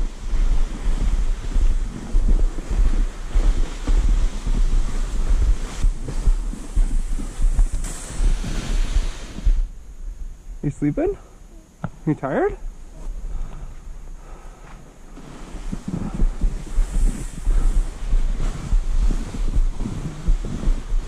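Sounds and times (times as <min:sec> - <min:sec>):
footsteps in snow: 0:00.0 - 0:09.8, 0:12.8 - 0:21.0
plastic sled sliding on snow: 0:00.0 - 0:09.8, 0:14.7 - 0:21.0
wind buffeting microphone: 0:00.0 - 0:10.7, 0:15.5 - 0:21.0.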